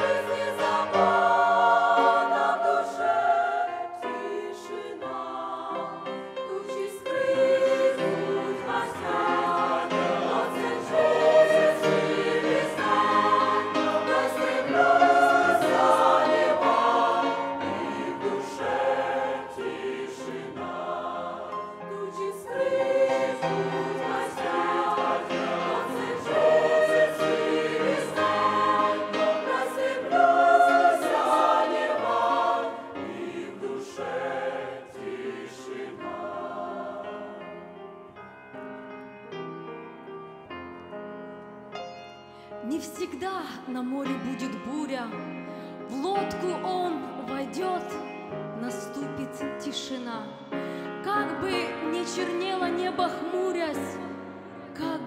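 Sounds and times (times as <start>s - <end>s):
mixed choir singing a hymn: 0.0s - 37.9s, 50.4s - 55.0s.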